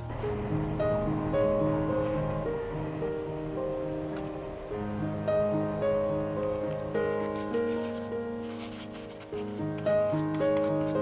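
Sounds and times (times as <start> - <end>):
gentle instrumental music: 0.0 - 11.0.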